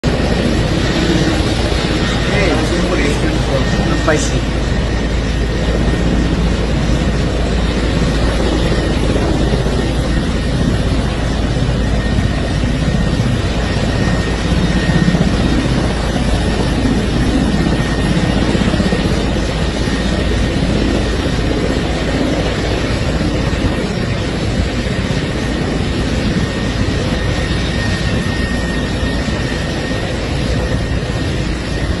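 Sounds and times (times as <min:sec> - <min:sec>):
helicopter engines and rotor: 0:00.0 - 0:32.0.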